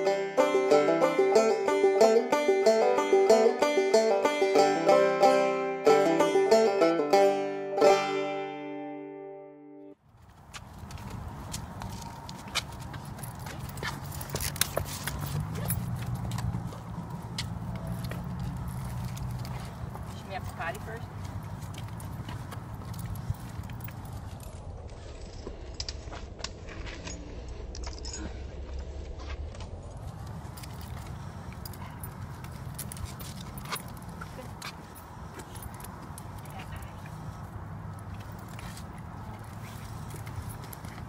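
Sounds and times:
footsteps on concrete: 0:10.1 - 0:27.0, 0:28.8 - 0:41.0
dog leash clicking and jingling: 0:10.8 - 0:24.6, 0:26.8 - 0:28.4, 0:30.2 - 0:41.0
steady low rumble: 0:10.9 - 0:41.0.

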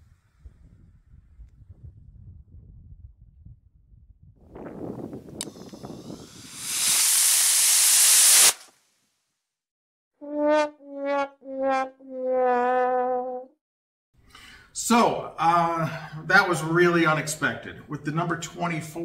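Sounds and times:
loud rushing hiss: 0:05.5 - 0:08.7
sad trombone sound effect: 0:10.2 - 0:13.5.

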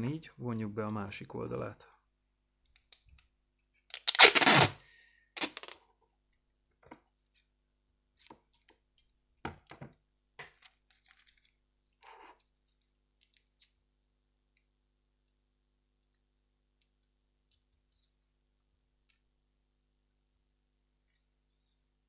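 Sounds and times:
adhesive tape ripping: 0:03.9 - 0:04.8, 0:05.4 - 0:05.8.

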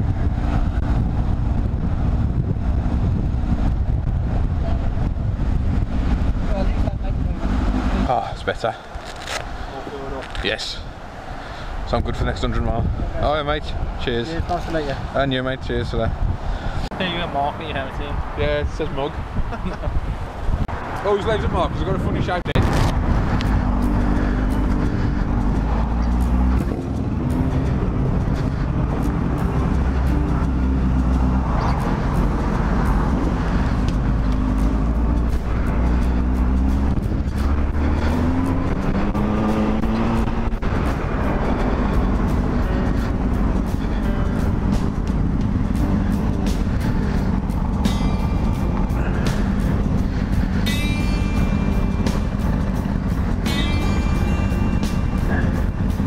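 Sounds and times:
motorcycle engine revving: 0:00.0 - 0:08.4, 0:22.6 - 0:56.0
background music: 0:23.3 - 0:56.0.

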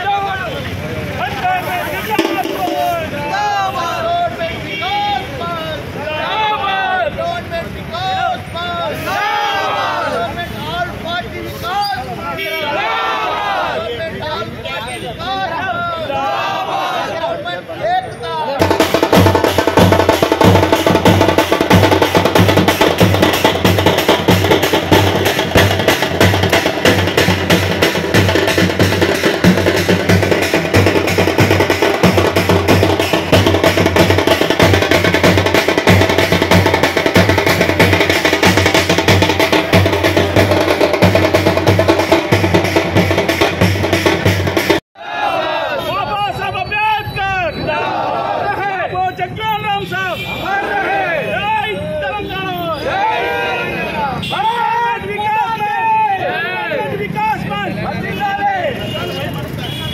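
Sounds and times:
voices: 0:00.0 - 0:43.5, 0:45.0 - 0:59.9
fast percussion music: 0:01.3 - 0:04.0, 0:18.6 - 0:44.8.

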